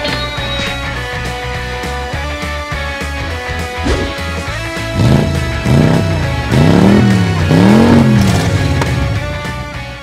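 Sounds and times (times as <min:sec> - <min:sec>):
background music: 0:00.0 - 0:10.0
motorcycle engine revving: 0:03.8 - 0:09.9.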